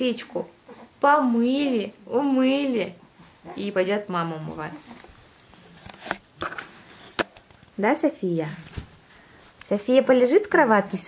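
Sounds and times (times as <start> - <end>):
camera handling rustle: 5.0 - 7.8.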